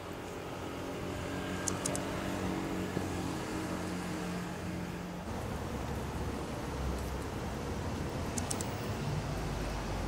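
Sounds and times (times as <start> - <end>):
city street ambience: 0.0 - 10.0
vehicle engine humming: 0.0 - 10.0.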